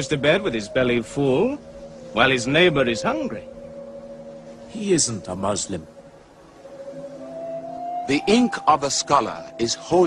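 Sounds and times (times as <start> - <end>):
ambient music with held notes: 0.0 - 10.0.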